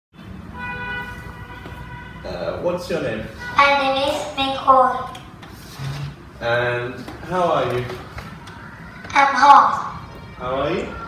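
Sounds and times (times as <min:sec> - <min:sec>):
horn-like pitched tone: 0:00.3 - 0:02.6.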